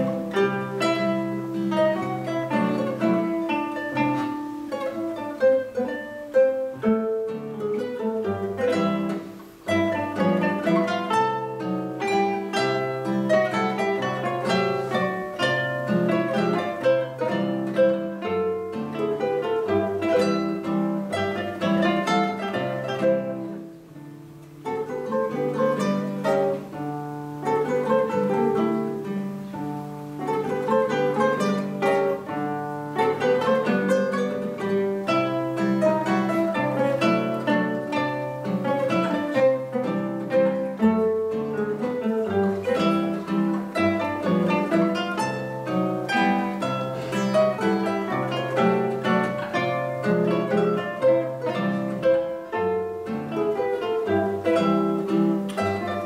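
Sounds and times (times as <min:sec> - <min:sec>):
classical guitar trio playing: 0:00.0 - 0:56.0.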